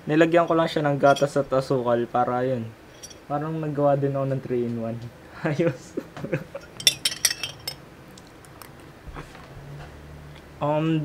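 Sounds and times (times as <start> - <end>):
spoon clinking in glass jar: 2.9 - 3.2, 6.6 - 7.8.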